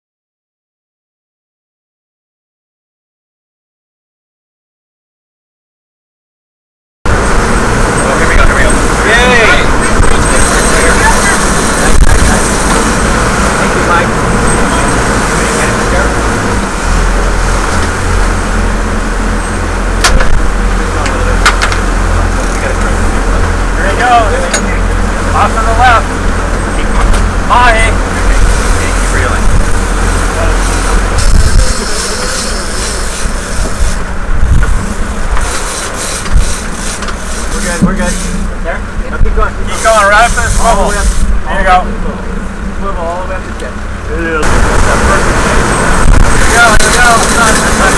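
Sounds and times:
wake rushing: 7.1s - 38.8s, 39.4s - 47.9s
boat engines rumbling: 7.1s - 47.9s
wind: 7.1s - 47.9s
voices calling out: 7.8s - 34.0s.

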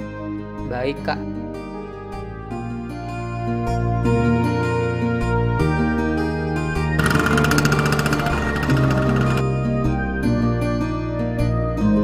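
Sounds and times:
plucked-string background music: 0.0s - 12.0s
motor scooter engine buzzing: 6.9s - 10.0s.

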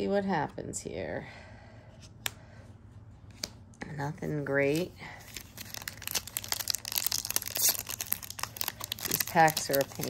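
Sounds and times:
foil wrapper crinkling and tearing: 5.2s - 10.0s.

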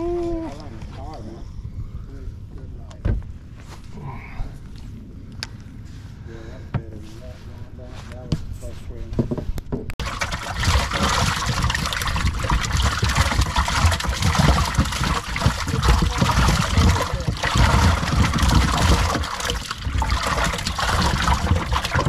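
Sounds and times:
fish splashing: 10.0s - 22.0s
water spraying and churning: 10.0s - 22.0s.

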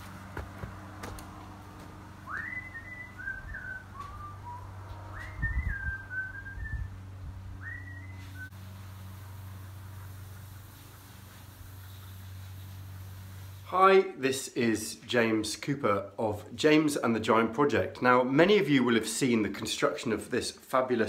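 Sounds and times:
dull low thumps: 0.2s - 8.5s
person whistling: 2.3s - 6.9s, 7.6s - 8.5s.

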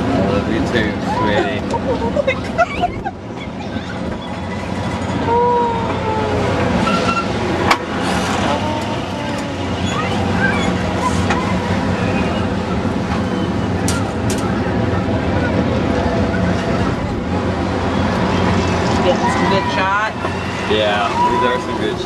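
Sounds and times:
crowd babble: 0.0s - 22.0s
ride machinery humming: 0.0s - 22.0s.

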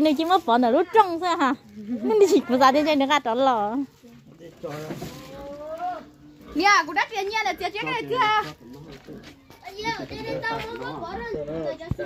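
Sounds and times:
children talking: 0.0s - 4.4s, 5.1s - 12.0s.

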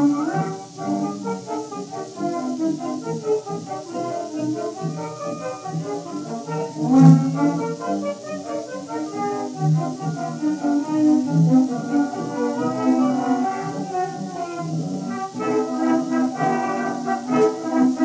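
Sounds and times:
record surface hiss: 0.0s - 18.0s
theatre orchestra playing: 0.0s - 18.0s.

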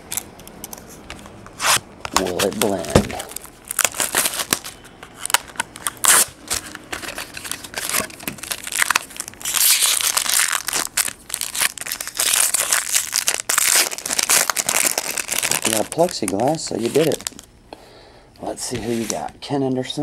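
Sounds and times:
foil wrapper crinkling and tearing: 2.1s - 17.5s.

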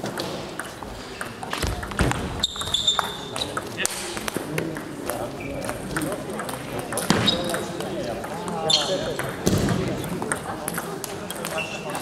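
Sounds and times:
table tennis balls clicking: 0.0s - 12.0s
voices in background: 0.0s - 12.0s.

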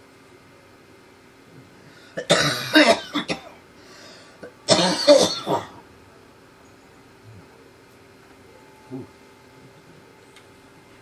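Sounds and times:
person coughing: 2.2s - 3.6s, 4.7s - 5.8s.

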